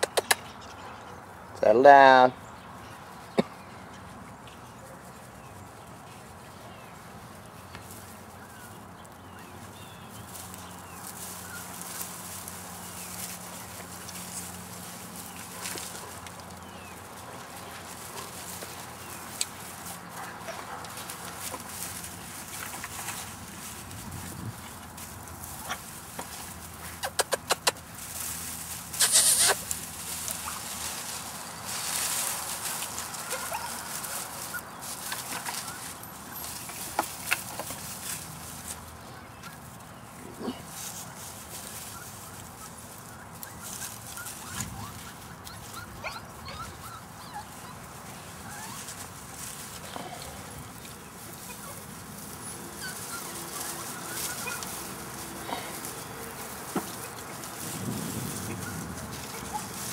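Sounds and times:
rustling in grass and straw: 0.5 - 59.9
puppy calls: 26.8 - 27.9, 28.9 - 36.5, 41.8 - 57.6, 58.4 - 59.9.

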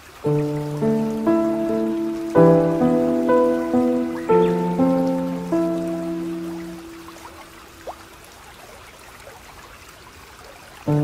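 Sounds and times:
music of sustained chords: 0.3 - 7.6.

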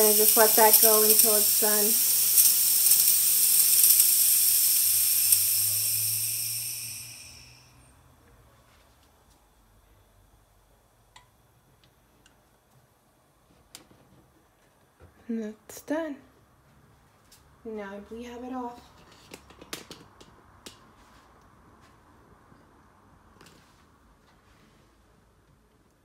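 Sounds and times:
espresso maker venting steam: 0.0 - 8.0.

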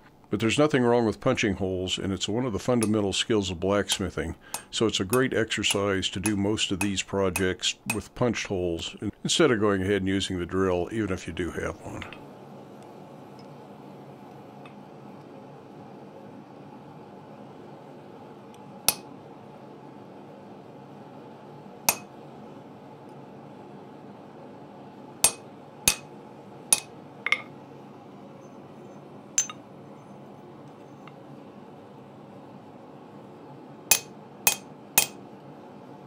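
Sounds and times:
steady low hum: 0.0 - 36.0
hammer striking metal punch: 3.9 - 8.1, 21.9 - 22.1, 25.2 - 26.1, 26.7 - 27.5, 29.4 - 29.6, 33.9 - 35.2.

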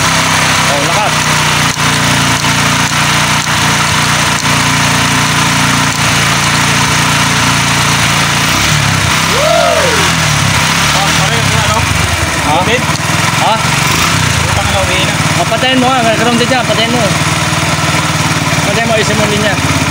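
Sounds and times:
motorcycle engine running: 0.0 - 19.9.

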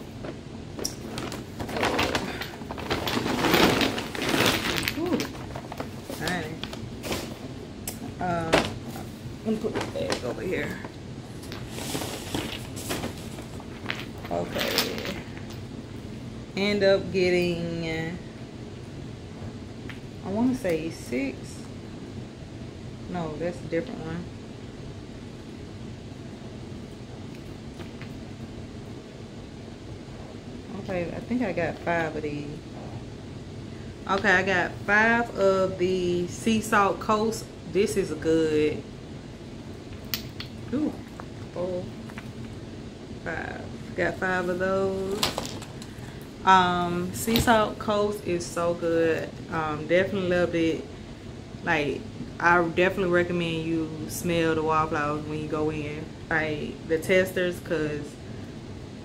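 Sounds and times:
shopping bag rustling: 0.0 - 7.5, 8.4 - 15.4
air conditioning humming: 0.0 - 59.0.

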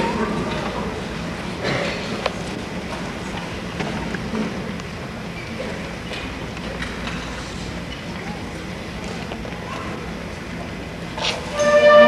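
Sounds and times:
hall room noise: 0.0 - 12.0.

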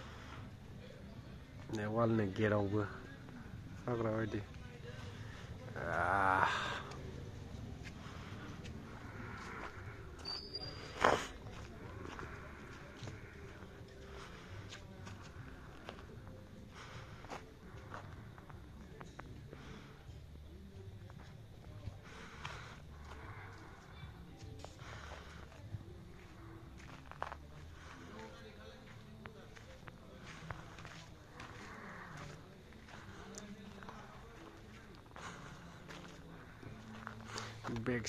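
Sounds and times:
faint distant voices: 0.0 - 38.0
footsteps on a path: 1.5 - 38.0.

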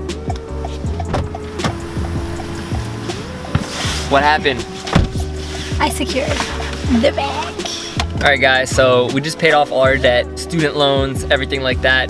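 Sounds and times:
falling bass notes: 0.0 - 9.3
steady held notes: 0.0 - 10.2
background music with a beat: 0.0 - 12.0.

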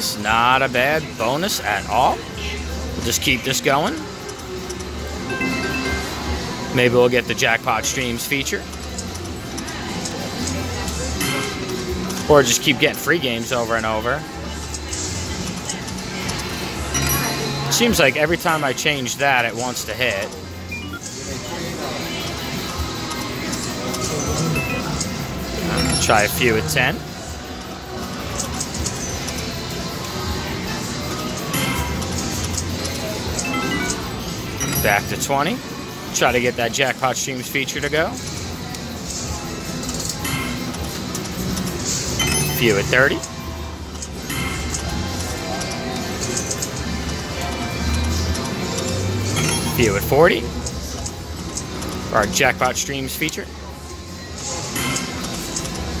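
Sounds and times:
slot machine electronic music: 3.0 - 8.7, 11.0 - 14.2, 16.5 - 27.1, 31.3 - 38.1, 40.0 - 45.4, 49.0 - 50.6
chime tones: 5.2 - 6.8, 33.4 - 35.4, 42.2 - 43.2
casino din: 5.2 - 7.0, 33.4 - 35.3, 42.2 - 43.2, 49.4 - 50.1.

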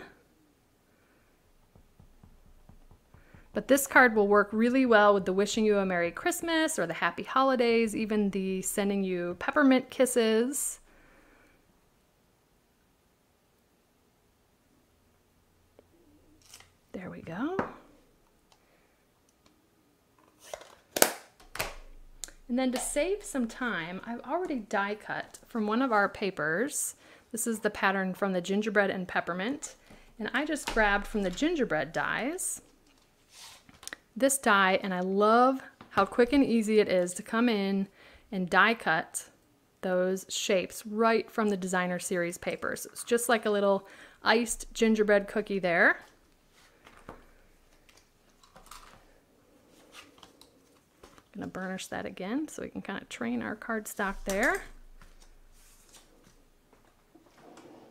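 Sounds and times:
paper rustling and tapping: 1.6 - 3.6
knocks on a desk: 1.7 - 3.6
paper rustle: 54.1 - 56.4.

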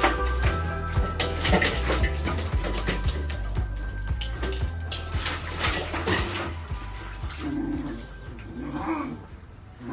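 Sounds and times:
puppies growling in play: 7.4 - 9.9.

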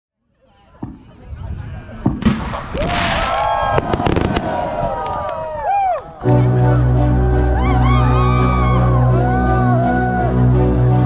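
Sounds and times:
fireworks bangs and cracks: 0.8 - 5.4.

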